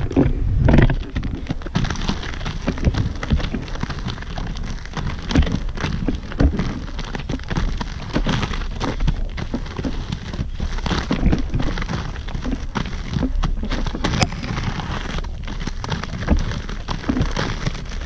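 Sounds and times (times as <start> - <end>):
skate wheels crunching on gravel: 0.0 - 18.0.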